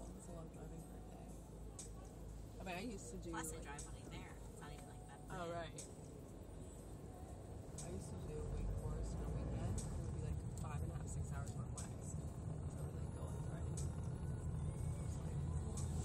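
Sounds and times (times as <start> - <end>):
car engine and tyres rumbling: 0.0 - 16.0
faint indistinct voices: 0.0 - 16.0.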